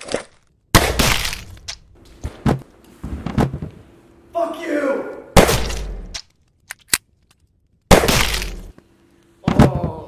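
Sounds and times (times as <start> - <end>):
sharp cracks and knocks: 0.0 - 3.7, 5.4 - 8.8
loud gunshot: 5.4 - 6.0, 7.9 - 8.6.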